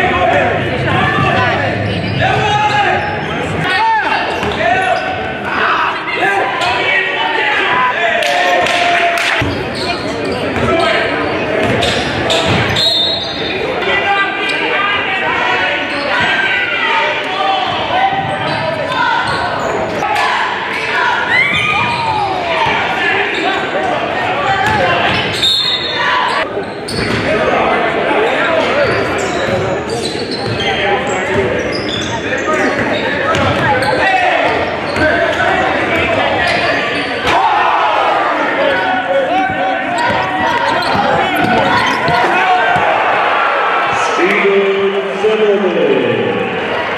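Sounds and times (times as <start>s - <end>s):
basketball bouncing on court: 10.5s - 10.8s, 26.9s - 27.3s, 32.7s - 33.9s, 39.4s - 43.0s
people shouting: 33.7s - 44.3s.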